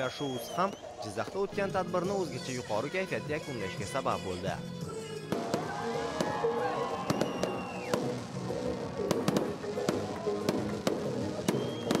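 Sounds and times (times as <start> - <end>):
music: 0.0 - 12.0
fireworks bangs and crackles: 5.3 - 12.0.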